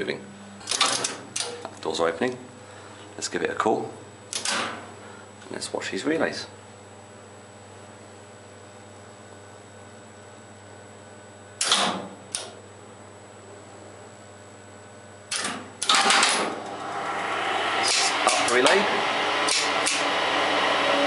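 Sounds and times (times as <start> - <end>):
steady low hum: 0.0 - 21.0.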